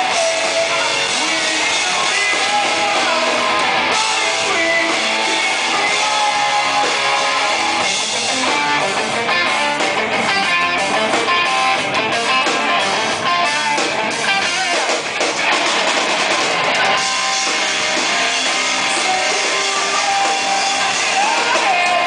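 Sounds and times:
drum kit: 0.0s - 22.0s
electric guitars picking melodic lines: 0.0s - 22.0s.

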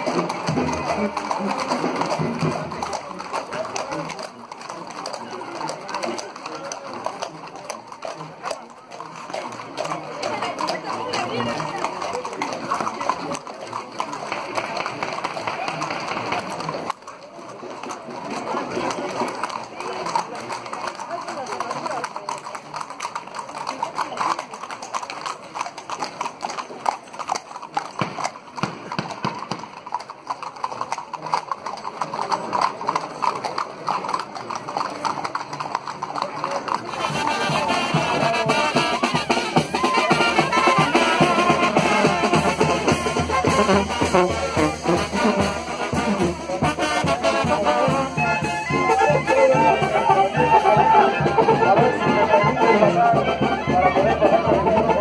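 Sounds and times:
brass band playing loudly: 0.0s - 4.7s, 36.9s - 55.0s
crowd voices: 0.0s - 55.0s
horse hooves clip-clopping on pavement: 0.0s - 55.0s.

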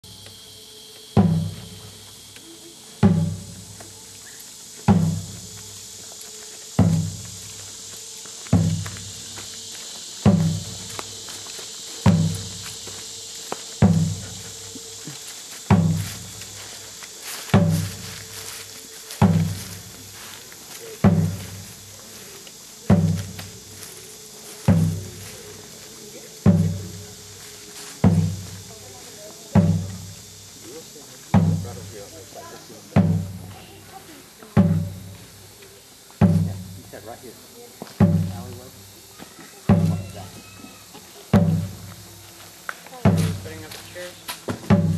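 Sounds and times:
insects chirring: 0.0s - 44.9s
deep drum beaten slowly: 1.0s - 44.9s.

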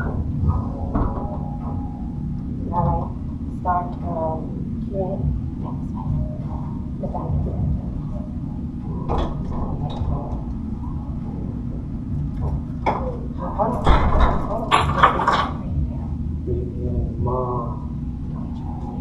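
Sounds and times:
indistinct voices: 0.0s - 19.0s
low room rumble: 0.0s - 19.0s.

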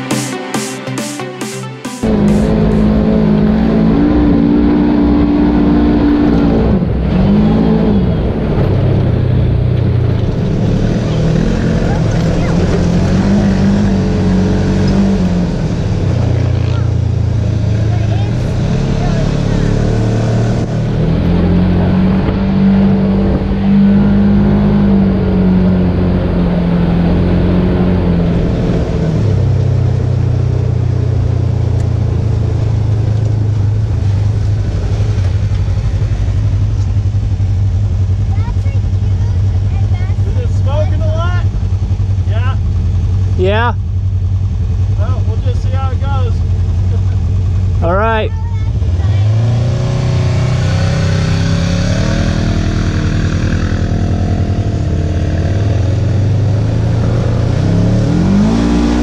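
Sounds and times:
off-road vehicle engine running: 2.0s - 59.0s.

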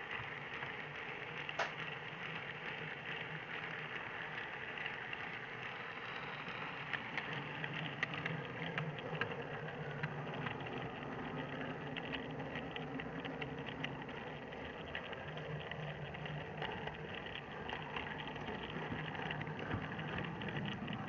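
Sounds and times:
model train rolling hum: 0.0s - 21.0s
wheels clicking over rails: 0.0s - 21.0s.

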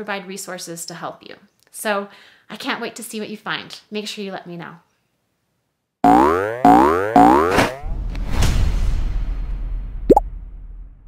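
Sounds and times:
upward gliding tones: 6.1s - 7.8s.

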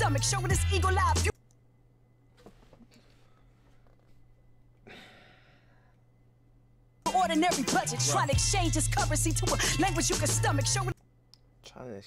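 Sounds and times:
breathy sigh: 4.8s - 6.0s.

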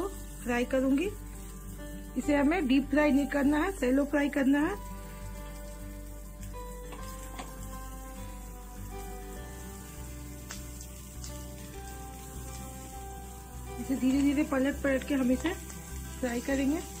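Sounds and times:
background music with steady bass: 0.0s - 17.0s
patties sizzling in oil: 0.0s - 17.0s.

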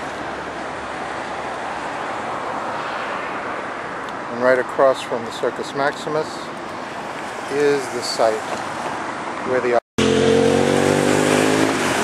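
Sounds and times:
steady road noise: 0.0s - 12.0s.

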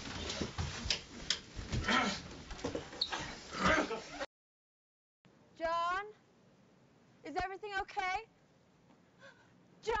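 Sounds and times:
knocks and scuffles: 0.0s - 3.4s.

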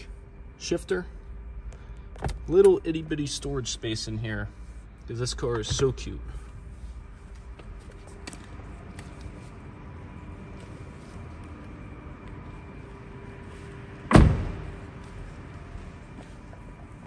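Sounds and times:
car door shutting: 14.1s - 14.8s.

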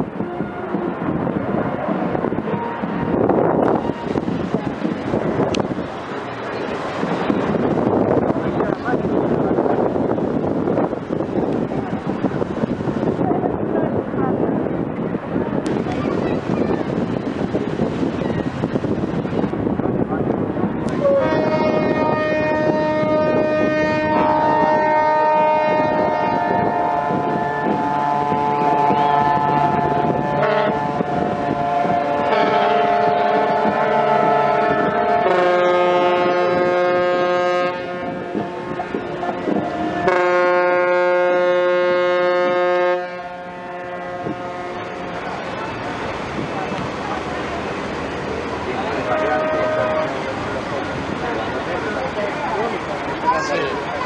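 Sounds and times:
wind on microphone: 0.0s - 54.0s
ship horns blasting: 0.1s - 1.1s, 20.9s - 46.8s, 48.8s - 50.5s.

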